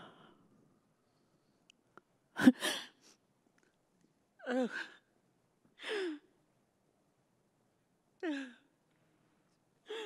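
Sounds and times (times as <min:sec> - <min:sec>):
woman sobbing: 0:04.4 - 0:05.1.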